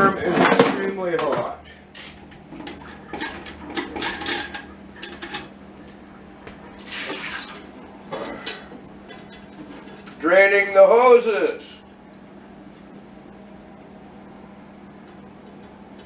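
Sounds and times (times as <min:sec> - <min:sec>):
metal parts and dishware clinking: 0:02.6 - 0:05.5, 0:07.2 - 0:10.1.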